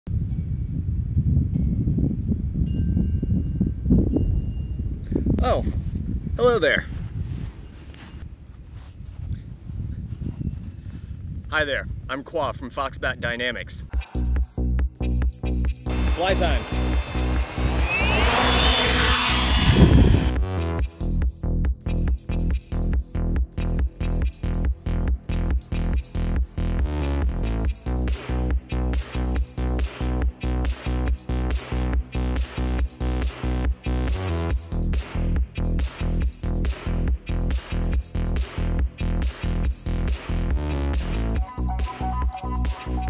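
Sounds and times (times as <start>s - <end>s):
wind buffeting microphone: 0.1s - 12.1s
faint high tones: 15.9s - 20.3s
propellers buzzing: 15.9s - 20.3s
drone motors whining: 15.9s - 20.4s.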